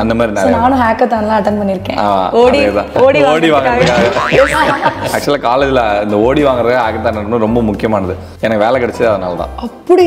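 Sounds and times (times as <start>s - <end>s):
people talking: 3.0s - 5.4s
people laughing: 4.0s - 5.3s.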